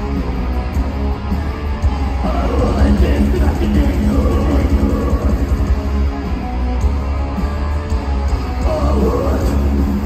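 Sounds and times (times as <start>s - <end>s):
heavy metal band playing live: 0.0s - 10.0s.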